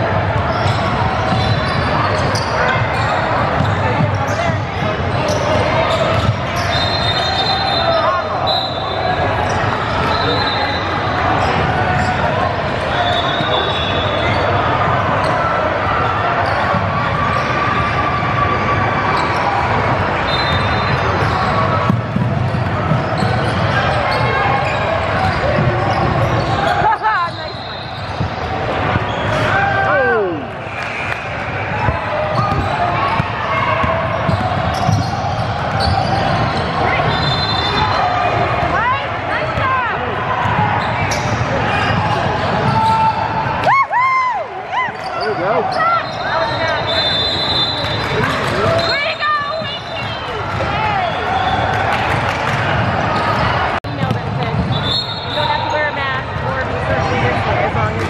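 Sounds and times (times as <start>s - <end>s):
chatter of players and spectators: 0.0s - 58.0s
sneakers squeaking: 0.1s - 43.6s, 44.8s - 57.4s.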